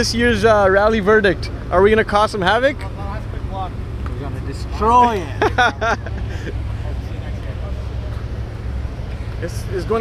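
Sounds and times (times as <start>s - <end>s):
car engines idling: 0.0s - 10.0s.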